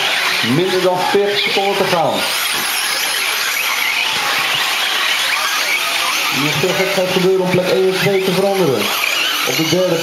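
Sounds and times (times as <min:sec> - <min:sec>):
rc truck motors whining: 0:00.0 - 0:10.0
thin wavering whine: 0:00.0 - 0:10.0.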